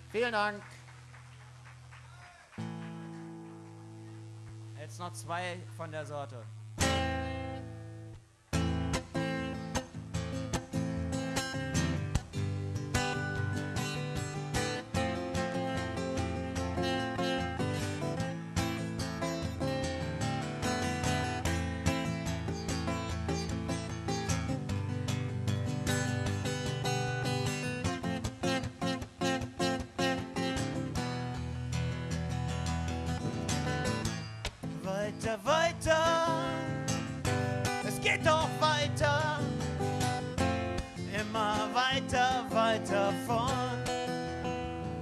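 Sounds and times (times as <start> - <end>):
acoustic guitar strumming: 2.6 - 45.0.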